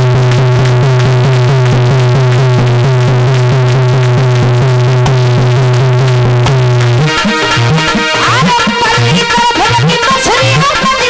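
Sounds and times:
steady low drone: 0:00.0 - 0:09.7
fast repeated instrumental notes: 0:00.0 - 0:11.0.

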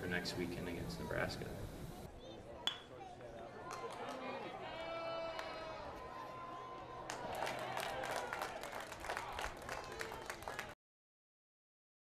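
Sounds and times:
stadium background noise: 0:00.0 - 0:10.8
spectators' voices and calls: 0:00.1 - 0:10.8.

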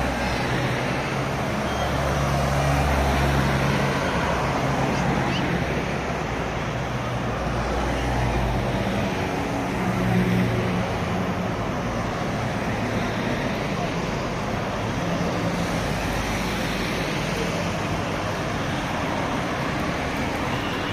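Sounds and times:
cars driving past: 0:00.0 - 0:20.9.

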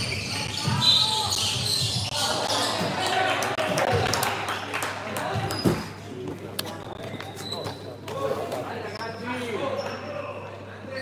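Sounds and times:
basketball court noise: 0:00.0 - 0:04.2
voices echoing in a gym: 0:00.0 - 0:11.0
shoes squeaking on hardwood floor: 0:05.4 - 0:06.0, 0:06.7 - 0:10.0.

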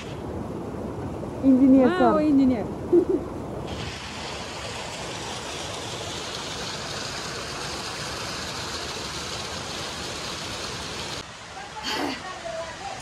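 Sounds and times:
water pouring into concrete channels: 0:03.7 - 0:13.0.

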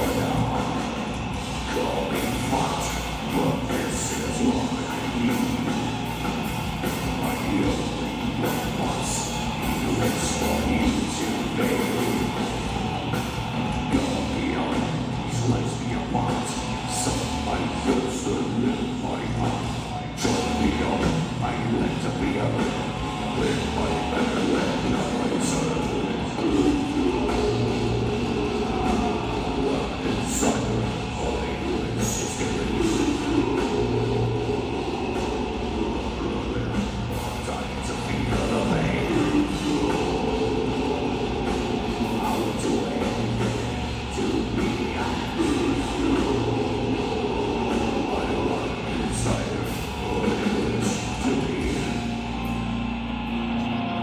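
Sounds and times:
death metal band playing live: 0:00.0 - 0:54.0
distorted electric guitars: 0:00.0 - 0:54.0
drum kit: 0:00.0 - 0:54.0.

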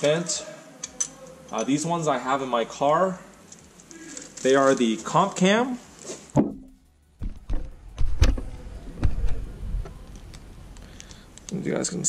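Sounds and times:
sharp clicks: 0:10.1 - 0:11.6.

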